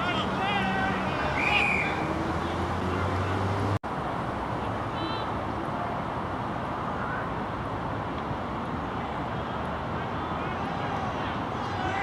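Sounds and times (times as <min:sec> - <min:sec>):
road traffic roar: 0:00.0 - 0:12.0.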